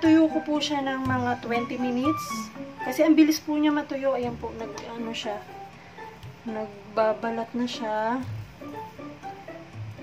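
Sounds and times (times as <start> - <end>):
woman's voice: 0.0 - 5.6, 6.4 - 8.4.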